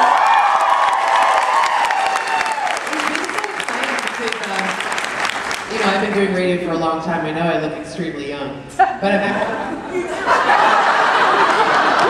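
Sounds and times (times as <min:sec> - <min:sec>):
audience applauding: 0:00.0 - 0:06.4, 0:10.5 - 0:12.0.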